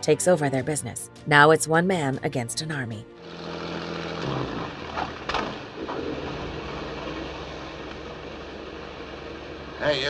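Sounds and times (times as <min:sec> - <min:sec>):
boat engine droning: 0:03.0 - 0:10.0.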